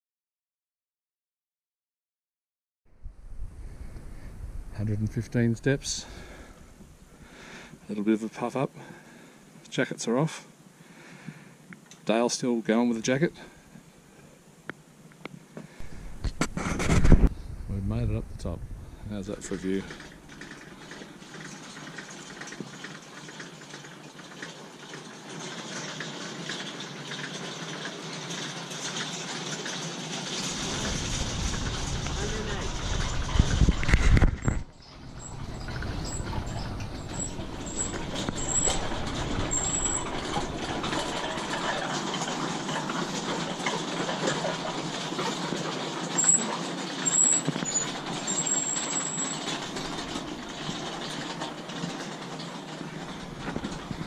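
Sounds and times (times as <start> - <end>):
wind buffeting microphone: 3.0 - 7.2, 15.8 - 19.8, 30.4 - 41.6
steady outdoor hiss: 3.0 - 54.0.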